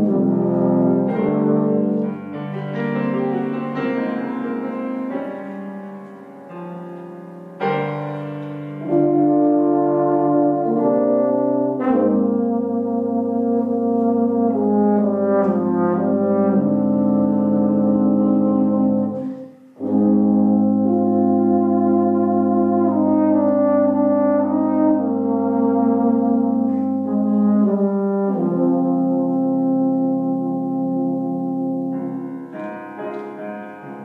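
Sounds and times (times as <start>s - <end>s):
brass instruments playing chords: 0.0s - 34.0s.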